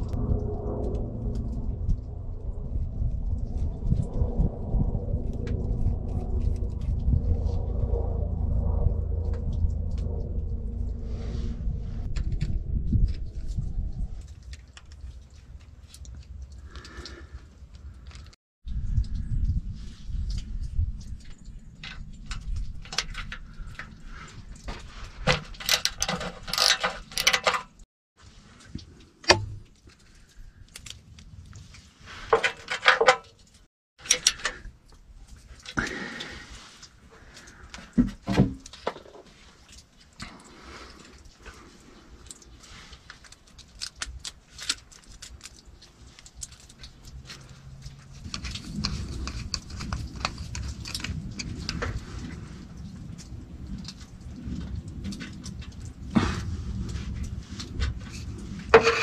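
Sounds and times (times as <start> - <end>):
tools and fittings clicking and rattling: 20.2 - 27.8, 28.6 - 56.1, 56.8 - 59.0.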